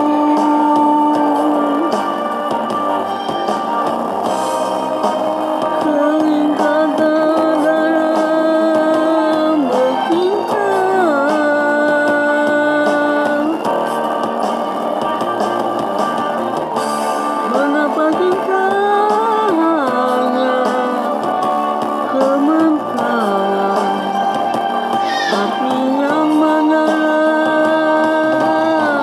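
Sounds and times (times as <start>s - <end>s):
guitar and band accompaniment: 0.0s - 29.0s
person singing pop ballad: 0.0s - 29.0s.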